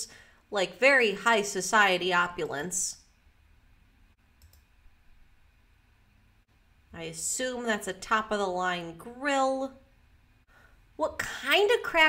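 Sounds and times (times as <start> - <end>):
faint computer mouse click: 4.4 - 4.7.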